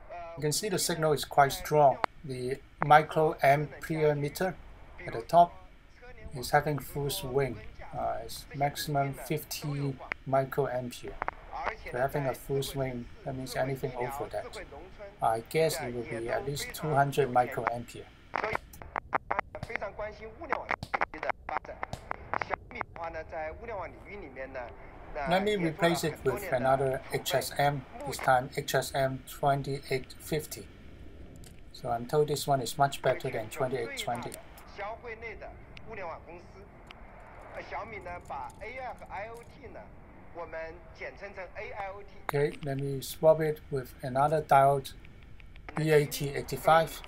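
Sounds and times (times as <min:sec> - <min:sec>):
voice on radio: 0:00.0 - 0:30.7, 0:31.8 - 0:36.7, 0:37.5 - 0:45.0, 0:45.7 - 0:47.0
radio clicks and crackles: 0:00.0 - 0:47.0.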